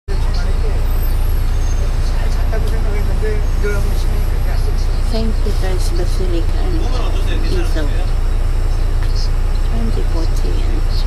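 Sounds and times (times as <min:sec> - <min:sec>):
faint voices talking: 0:00.1 - 0:11.0
vehicle rumble and road traffic: 0:00.1 - 0:11.0.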